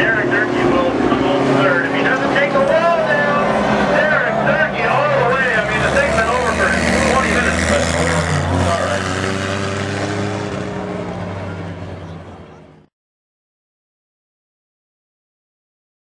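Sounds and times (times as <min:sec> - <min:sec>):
race car engines droning: 0:00.0 - 0:12.9.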